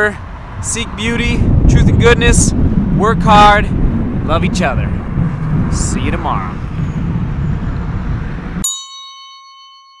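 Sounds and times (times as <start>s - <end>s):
low traffic rumble: 0.0s - 8.6s
bell-like chime: 8.6s - 10.0s.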